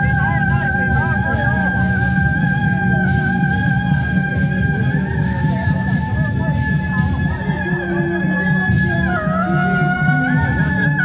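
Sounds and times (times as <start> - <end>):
busy drumming: 0.0 - 11.0
suona playing high melody: 0.0 - 11.0.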